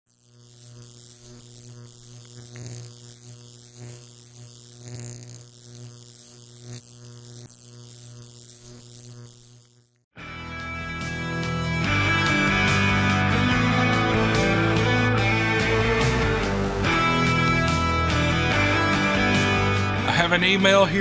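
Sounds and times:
wavering hiss: 0:00.1 - 0:10.0.

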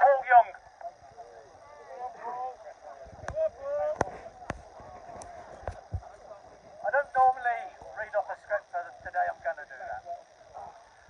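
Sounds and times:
man speaking through megaphone: 0:00.0 - 0:10.8.

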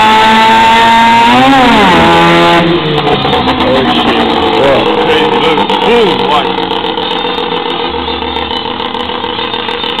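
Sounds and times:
rotary engine running steadily: 0:02.2 - 0:10.0.

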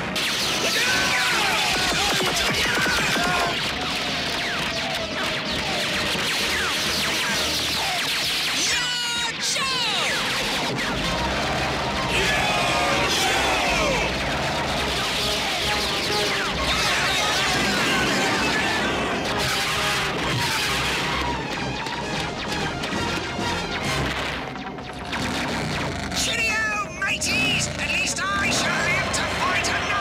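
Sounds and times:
laser blaster zaps: 0:00.0 - 0:08.9
action music: 0:00.0 - 0:30.0.

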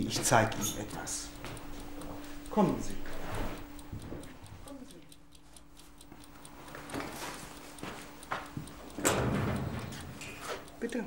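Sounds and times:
clock ticking: 0:00.0 - 0:11.0.

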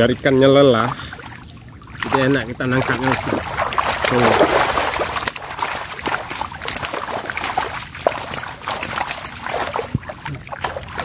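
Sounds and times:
water splashing and sloshing: 0:00.0 - 0:11.0
fish thrashing in water: 0:00.7 - 0:11.0.

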